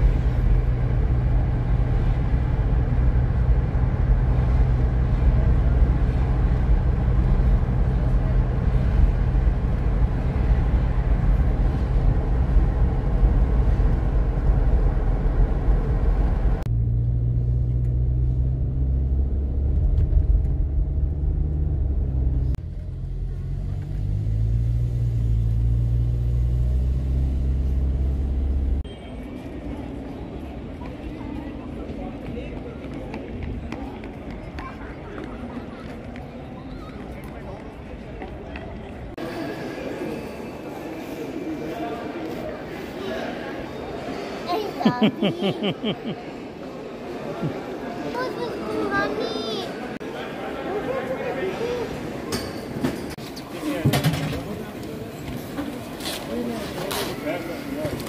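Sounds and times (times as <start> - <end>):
road noise inside car: 0.0 - 28.9.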